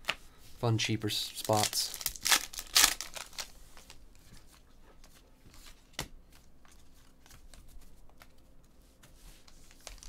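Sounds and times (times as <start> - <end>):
trading cards rustling: 1.3 - 4.6.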